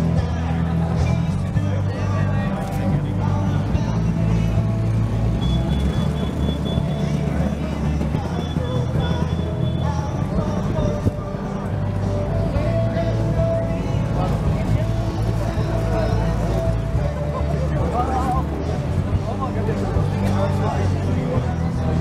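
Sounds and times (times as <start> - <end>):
background song with bass line: 0.0 - 22.0.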